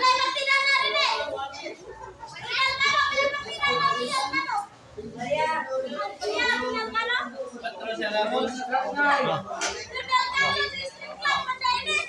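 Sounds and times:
high-pitched voices calling out: 9.6 - 12.0.

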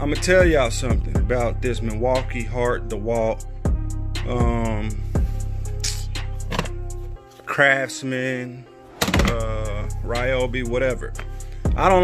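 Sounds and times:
deep bass music: 0.0 - 7.2, 9.0 - 12.0
drum hits: 9.0 - 9.5.

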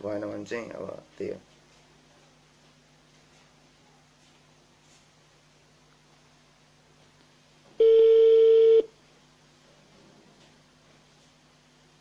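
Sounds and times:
telephone ringback tone: 7.8 - 8.9.

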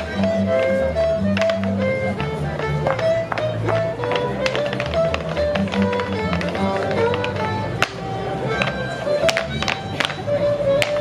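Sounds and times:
fiddle playing folk dance tune: 0.0 - 11.0
clogs tapping on dance board: 1.2 - 11.0.

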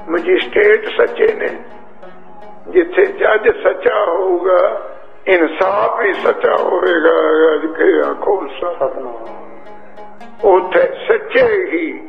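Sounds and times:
man speaking through a microphone: 0.1 - 1.7, 2.7 - 9.4, 10.4 - 12.0.

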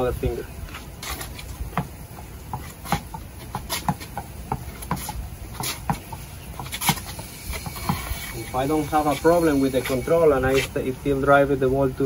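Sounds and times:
tennis ball hitting racket and wall: 1.0 - 10.7.

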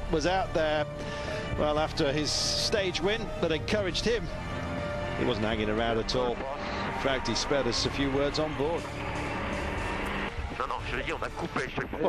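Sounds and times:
engine drone: 4.2 - 11.4.

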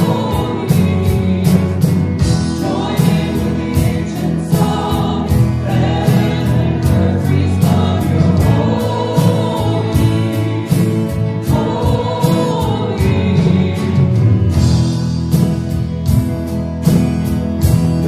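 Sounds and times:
group of voices singing: 0.0 - 15.0
backing music with steady beat: 0.0 - 18.0.

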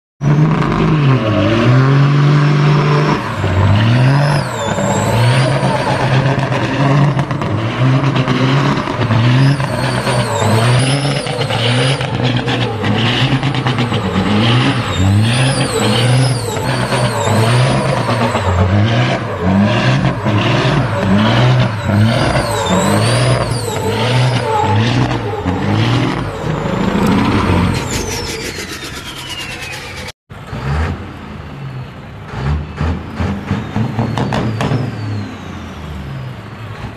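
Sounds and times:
diesel truck engine revving: 0.2 - 36.9
high whistle: 2.6 - 7.2, 9.2 - 30.2.

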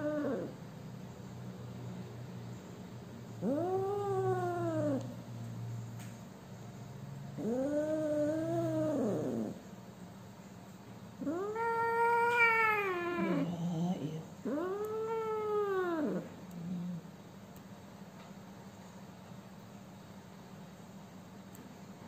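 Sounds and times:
kitten yowling: 0.0 - 0.5, 3.4 - 5.1, 11.2 - 16.3.

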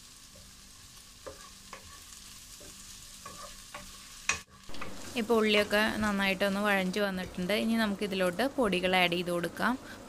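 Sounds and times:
food sizzling in oil: 0.0 - 10.0
wooden spatula scraping a pot: 1.2 - 5.8.

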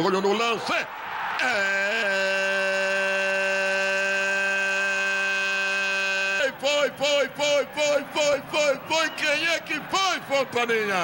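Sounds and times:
commentator shouting goal: 4.7 - 11.0.

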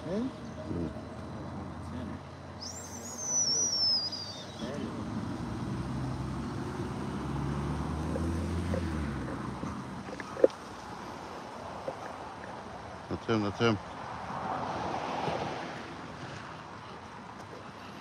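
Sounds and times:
high whistle gliding downward: 2.6 - 4.7
car driving past: 4.6 - 10.0, 14.0 - 16.7.

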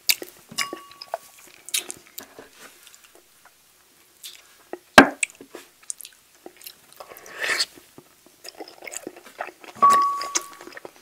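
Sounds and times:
wet chewing: 4.2 - 11.0.

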